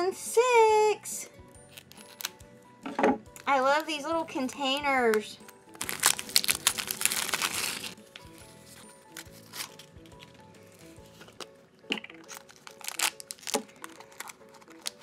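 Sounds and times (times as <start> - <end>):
soft background music: 0.0 - 15.0
plastic packaging crinkling and tearing: 1.7 - 2.4, 4.7 - 10.4, 12.2 - 15.0
sharp plastic crackles: 4.7 - 8.3, 11.3 - 15.0.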